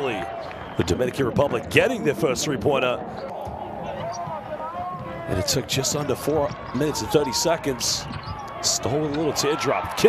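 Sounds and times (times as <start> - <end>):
crowd noise hum: 0.0 - 10.0
faint voices: 1.5 - 10.0.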